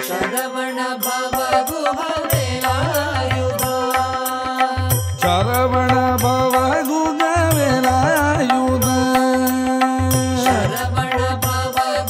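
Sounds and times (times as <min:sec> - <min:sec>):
person singing devotional song: 0:00.0 - 0:12.0
hand drum rhythm: 0:01.3 - 0:12.0.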